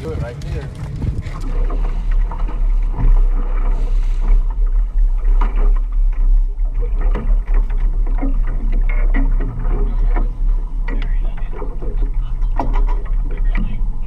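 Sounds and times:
low rumble aboard a boat: 0:00.0 - 0:14.0.

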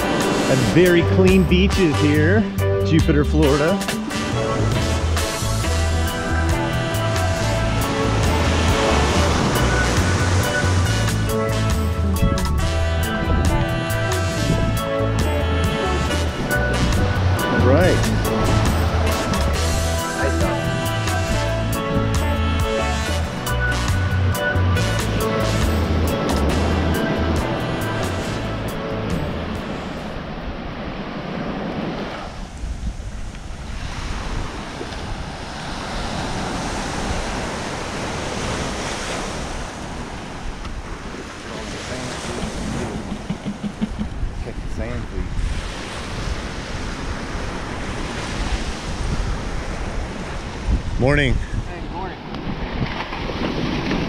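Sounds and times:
background music: 0:00.0 - 0:30.0
ocean surf washing onto beach: 0:00.0 - 0:54.0
wind on microphone: 0:03.4 - 0:54.0.

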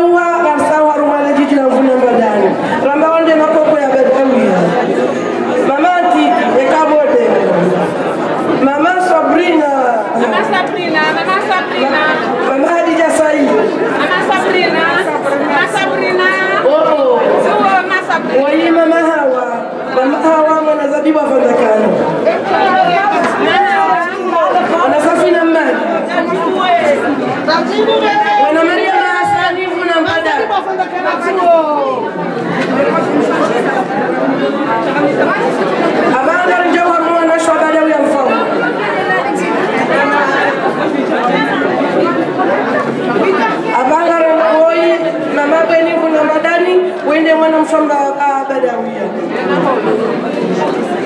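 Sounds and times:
voices through microphones: 0:00.0 - 0:51.0
women talking over one another: 0:00.0 - 0:51.0.

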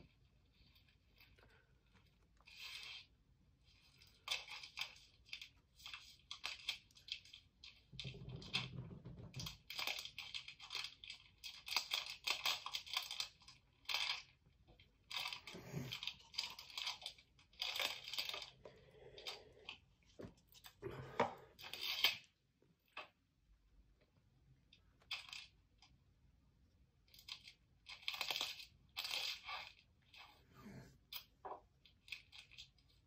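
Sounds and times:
pencil shading on paper: 0:30.4 - 0:31.0.

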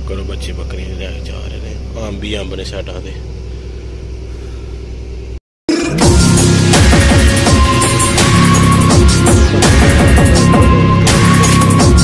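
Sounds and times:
engine and road noise drone: 0:00.0 - 0:05.4.

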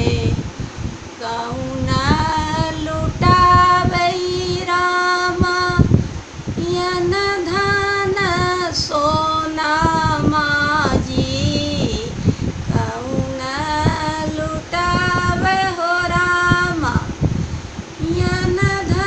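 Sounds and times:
woman singing unaccompanied: 0:00.0 - 0:00.5, 0:01.1 - 0:17.3, 0:17.9 - 0:19.0.

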